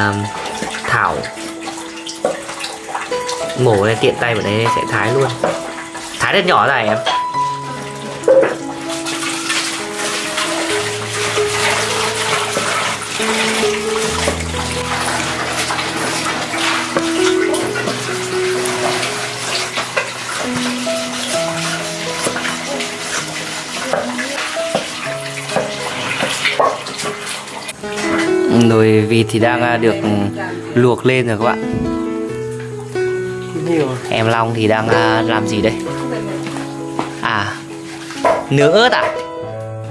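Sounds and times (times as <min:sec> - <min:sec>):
background music with held notes: 0:00.0 - 0:39.9.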